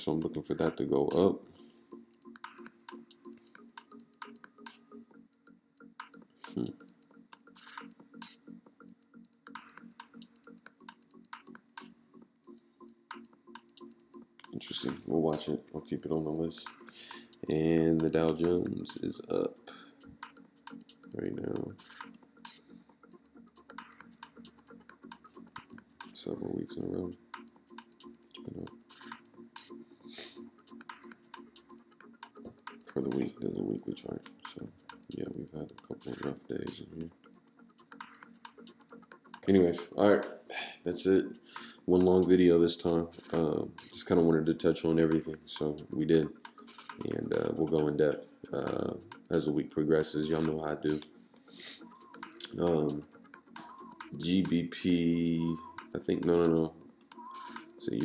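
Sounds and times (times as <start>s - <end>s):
keyboard typing: 1.8s - 15.0s, 20.2s - 26.1s, 30.5s - 33.1s, 34.2s - 39.9s, 48.5s - 49.6s, 51.8s - 54.2s, 55.6s - 57.8s
mouse clicking: 1.8s - 15.0s, 16.4s - 18.9s, 20.2s - 26.2s, 27.4s - 33.2s, 33.8s - 39.9s, 48.4s - 54.2s, 55.6s - 57.8s.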